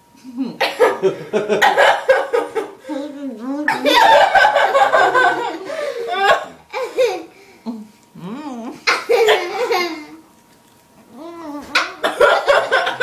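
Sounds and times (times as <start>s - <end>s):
people laughing: 3.8s - 7.2s, 12.0s - 13.0s.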